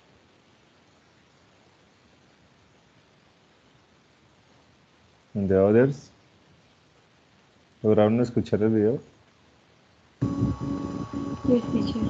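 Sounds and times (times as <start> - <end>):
droning tone with choppy noise: 10.2 - 12.0.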